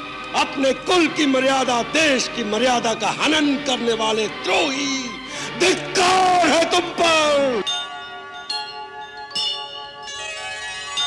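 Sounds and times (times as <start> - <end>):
background music: 0.0 - 11.0
bells ringing: 6.4 - 11.0.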